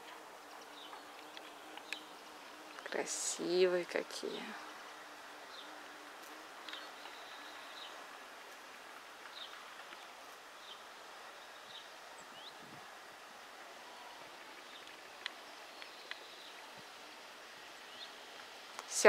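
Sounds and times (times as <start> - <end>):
steady low hiss: 0.0 - 19.0.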